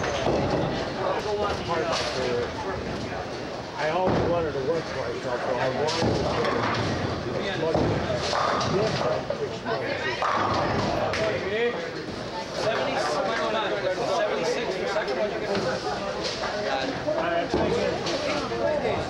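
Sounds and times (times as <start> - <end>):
bowling pins and balls clattering: 0.0 - 3.2, 5.5 - 9.4, 10.1 - 11.4
people talking: 0.0 - 19.0.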